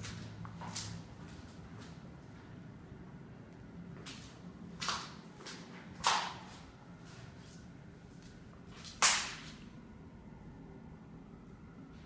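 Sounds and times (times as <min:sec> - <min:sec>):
sharp crack ringing in a room: 0:04.8 - 0:06.7, 0:08.8 - 0:09.8.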